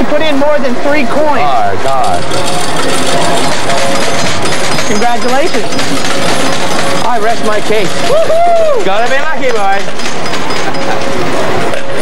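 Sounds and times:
slot machine electronic tones: 0.0s - 8.1s, 8.8s - 12.0s
machine noise: 0.0s - 12.0s.

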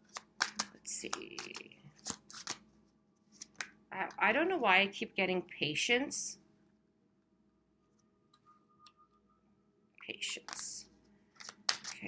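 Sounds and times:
cards being shuffled: 0.0s - 2.7s, 3.3s - 3.7s, 11.3s - 12.0s.

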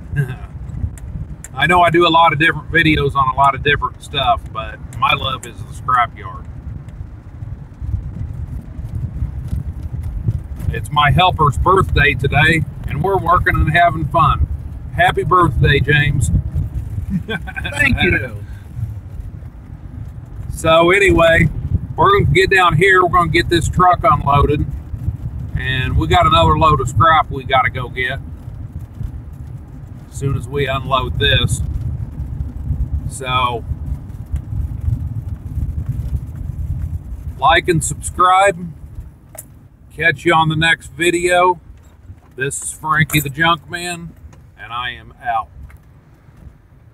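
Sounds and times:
road noise inside cab: 0.0s - 46.9s
truck engine and tyres rumbling: 0.0s - 46.9s.

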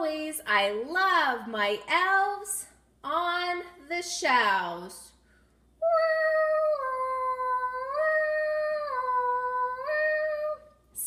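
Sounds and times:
woman humming wordless tune: 5.8s - 11.0s.

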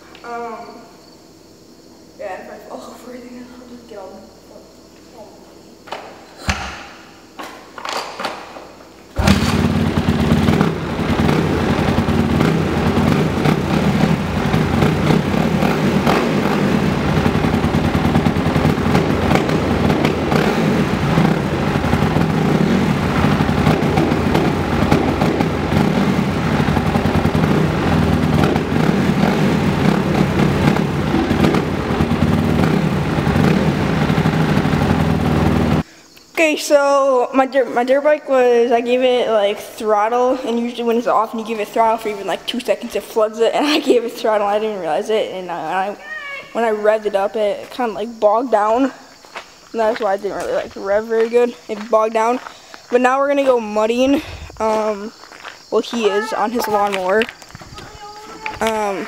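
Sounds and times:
dirt bike engine starting: 9.1s - 35.8s
person talking: 36.4s - 49.0s, 49.8s - 55.1s, 55.7s - 59.0s.

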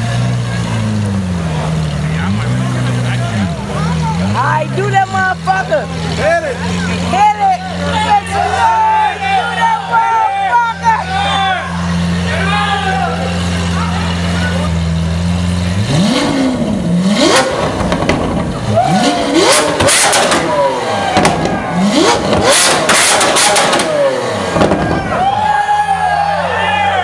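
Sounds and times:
sports car engine revving: 0.0s - 26.2s
exhaust crackles and pops: 17.2s - 18.7s, 21.1s - 25.2s.

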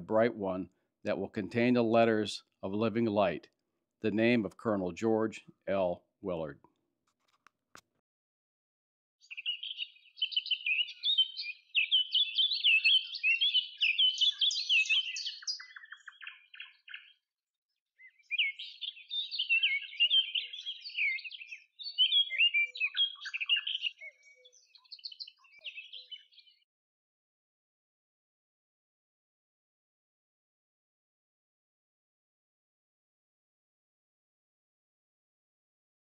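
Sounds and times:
birds chirping: 9.2s - 17.2s, 18.0s - 26.6s.

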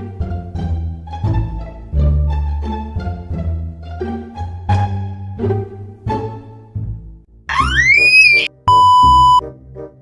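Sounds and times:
rising whistle sound effect: 7.5s - 9.4s
test-card beep: 7.5s - 9.4s.

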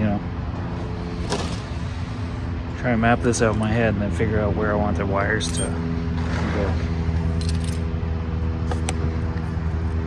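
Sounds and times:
light metallic clinks: 5.4s - 5.8s.

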